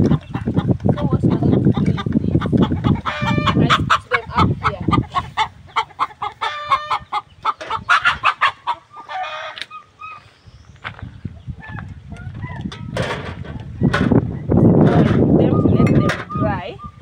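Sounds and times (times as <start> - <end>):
chickens clucking: 0.0 - 17.0
drawn-out chicken calls: 0.0 - 17.0.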